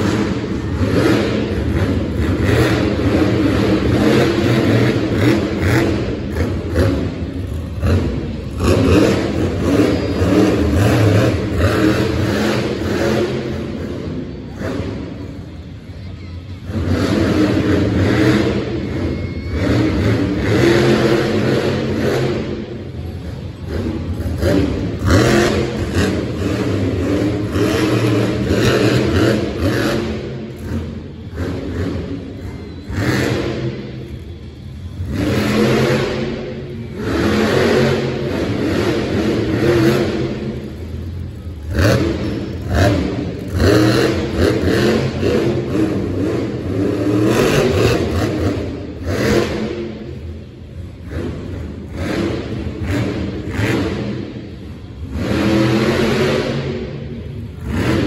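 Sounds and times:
truck engine revving hard: 0.0 - 15.3, 16.6 - 58.0.

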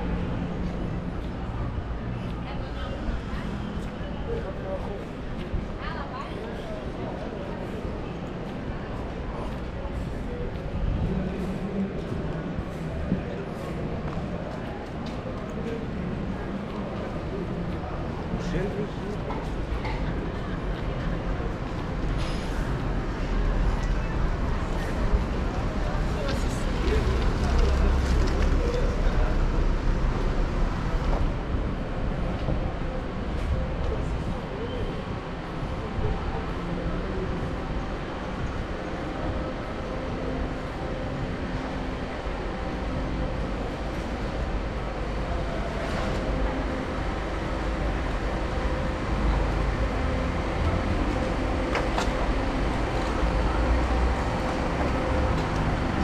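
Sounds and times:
people talking in street: 0.0 - 56.0
traffic rumble: 0.0 - 56.0.

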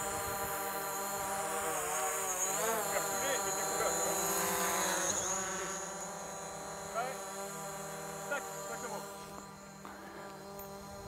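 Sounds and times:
drone propellers buzzing: 0.0 - 11.0.

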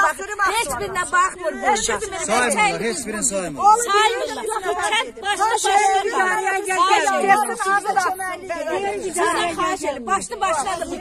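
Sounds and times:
women talking: 0.0 - 2.7, 3.6 - 11.0.

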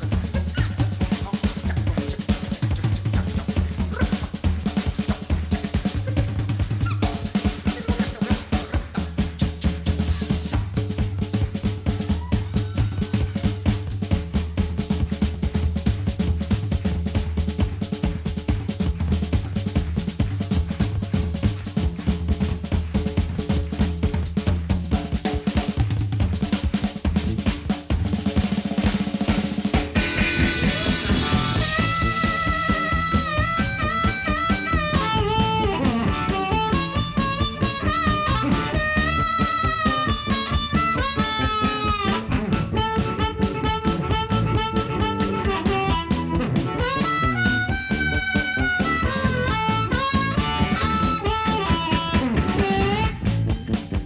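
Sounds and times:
pulsing bass: 0.0 - 25.0, 30.0 - 54.0
drum kit played busily: 0.0 - 54.0
electric guitar: 0.0 - 54.0.

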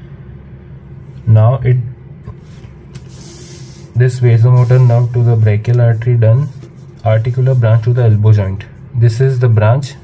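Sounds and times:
steady low hum: 0.0 - 10.0
tablet sliding across paper: 2.4 - 8.2.

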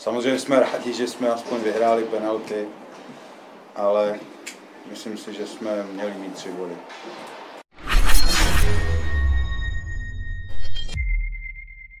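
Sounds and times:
whooshing hit: 7.8 - 11.0
high ringing tone: 8.1 - 12.0.

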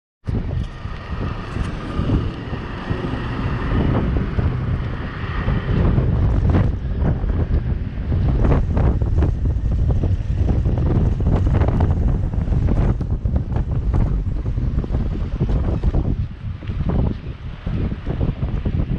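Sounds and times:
street traffic: 0.2 - 18.9
wind buffeting microphone: 0.2 - 18.9.

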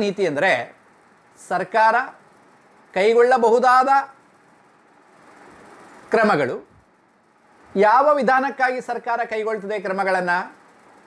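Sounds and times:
faint room background noise: 0.0 - 11.0.

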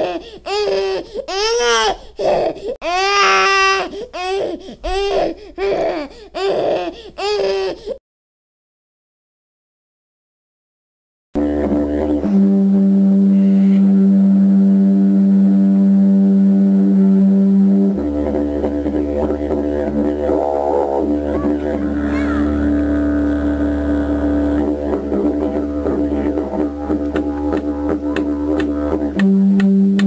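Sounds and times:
didgeridoo drone: 11.4 - 30.0.

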